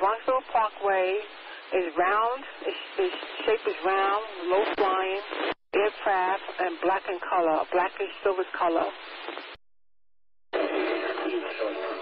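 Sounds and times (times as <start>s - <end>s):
radio static: 0.0s - 9.6s, 10.6s - 12.0s
faint radio voice: 10.6s - 12.0s.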